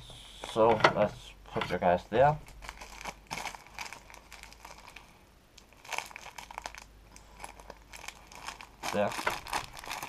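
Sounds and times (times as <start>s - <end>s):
plastic bag crinkling: 2.4s - 10.0s.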